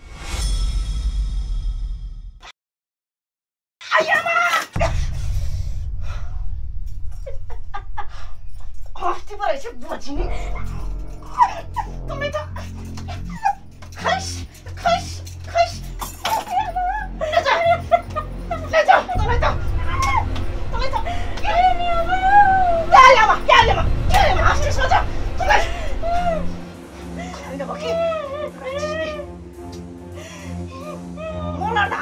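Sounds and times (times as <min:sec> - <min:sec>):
woman crying and wailing: 0:03.8 - 0:05.1, 0:10.0 - 0:32.0.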